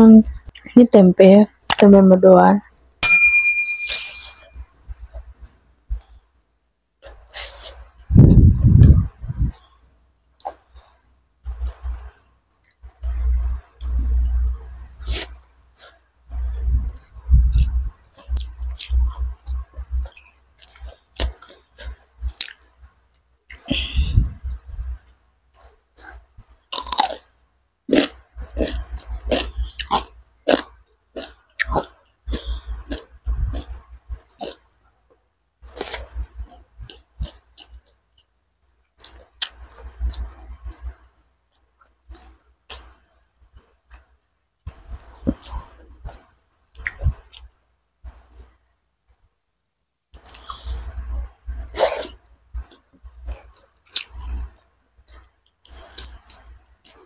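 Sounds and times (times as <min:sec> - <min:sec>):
loud muffled chewing: 0:27.9 - 0:35.0, 0:35.6 - 0:38.3, 0:38.9 - 0:47.5.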